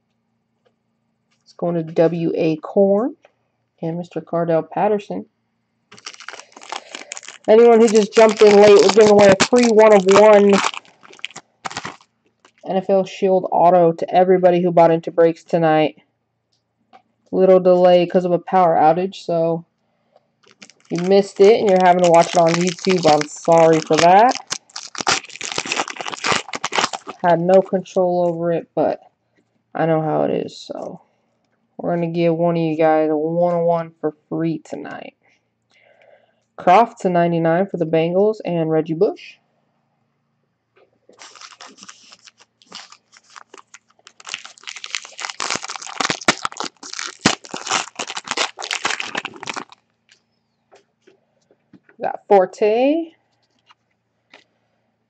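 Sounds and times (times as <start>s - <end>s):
wrapper crinkling being torn: 5.9s - 12.7s, 20.4s - 28.4s, 41.2s - 50.2s.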